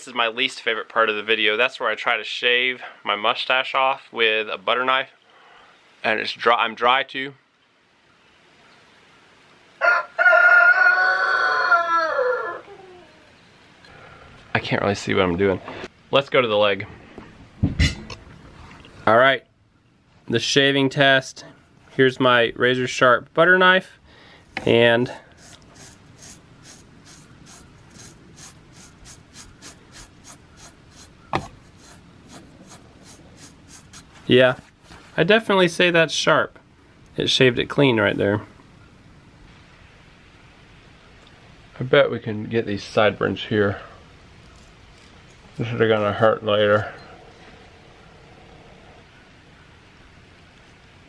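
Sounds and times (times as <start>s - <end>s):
rooster crowing: 9.8s - 13.3s
knife scraping leg hair: 25.3s - 34.2s, 44.4s - 46.3s.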